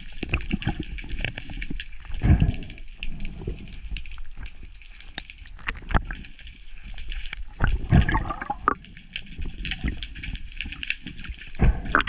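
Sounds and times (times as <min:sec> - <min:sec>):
faint crackle: 0:00.0 - 0:12.0
water gushing and bubbling: 0:00.0 - 0:12.0.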